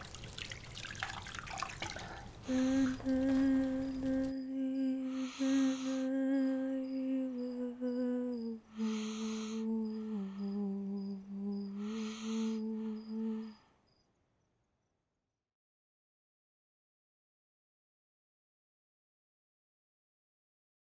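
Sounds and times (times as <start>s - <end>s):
crickets chirping: 0.6s - 15.0s
woman humming a slow tune: 2.4s - 13.7s.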